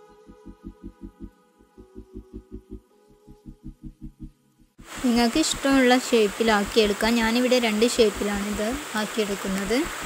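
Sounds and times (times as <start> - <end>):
faint higher tones: 0.0 - 4.8
low throbbing hum: 0.0 - 5.0.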